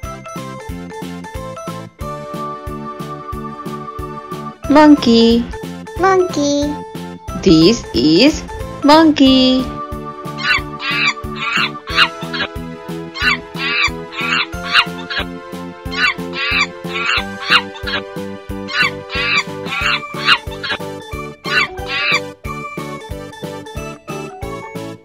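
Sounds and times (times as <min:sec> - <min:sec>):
children's music with steady beat: 0:00.0 - 0:25.0
monkey calls: 0:10.3 - 0:20.8, 0:21.4 - 0:22.3.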